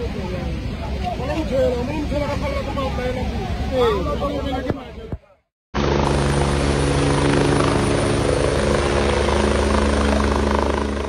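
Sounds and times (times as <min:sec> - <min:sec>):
helicopter rotor and engine: 0:05.8 - 0:11.0.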